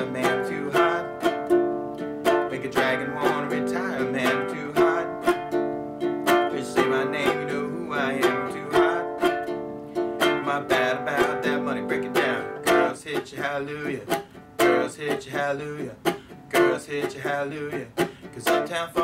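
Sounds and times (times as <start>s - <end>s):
ukulele strumming: 0.0s - 19.0s.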